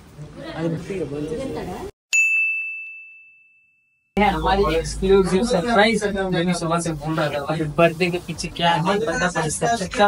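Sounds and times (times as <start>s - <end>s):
high bell-like ding: 2.1s - 4.1s.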